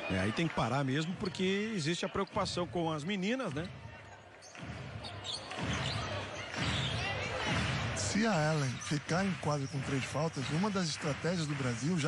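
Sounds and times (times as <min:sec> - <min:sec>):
crowd murmur in an arena: 0:00.0 - 0:12.0.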